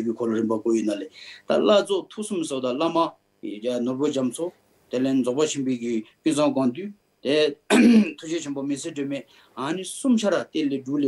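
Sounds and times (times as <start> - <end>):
man talking: 0.0 - 11.0
throat clearing: 7.7 - 8.2.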